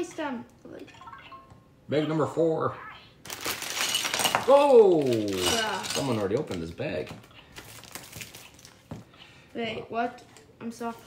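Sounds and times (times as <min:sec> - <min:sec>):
plastic bag crinkling: 0:03.2 - 0:08.8.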